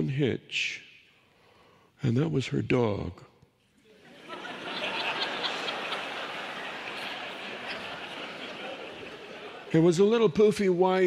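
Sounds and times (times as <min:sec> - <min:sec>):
audience laughing: 0:04.0 - 0:09.9.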